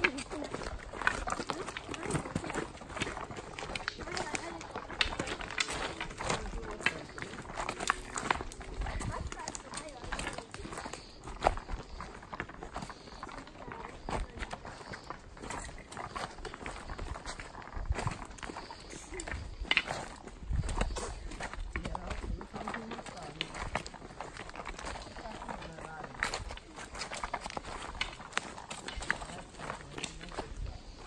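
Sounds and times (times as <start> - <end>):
faint voices talking: 0.0 - 31.0
footsteps on stony trail: 0.0 - 31.0
walking sticks knocking on rocks: 0.0 - 31.0.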